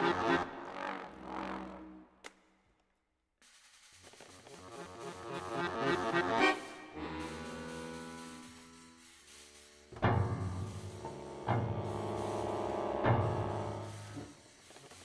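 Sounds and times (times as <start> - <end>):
improvised accordion piano and trumpet: 0.0 - 1.8, 4.6 - 9.4, 11.3 - 14.3.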